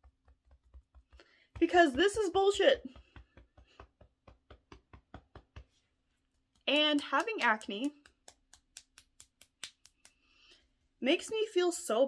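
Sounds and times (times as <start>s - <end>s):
fingertips tapping on head: 0.0s - 5.8s.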